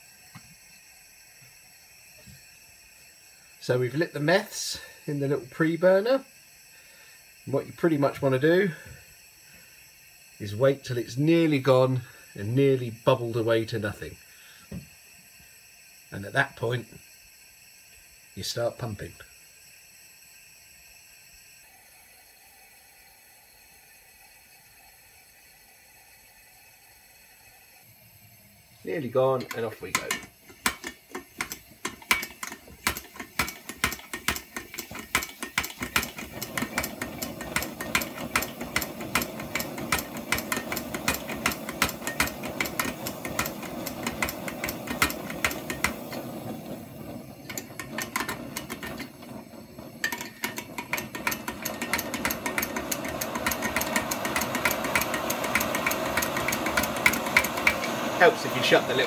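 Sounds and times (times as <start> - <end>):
stove pump clicking: 29.0 - 59.0.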